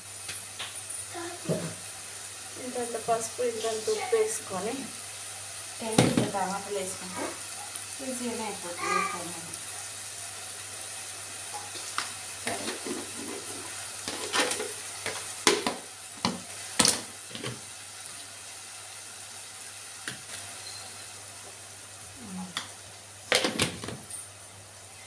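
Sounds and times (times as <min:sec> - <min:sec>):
steady hiss: 0:00.0 - 0:25.0.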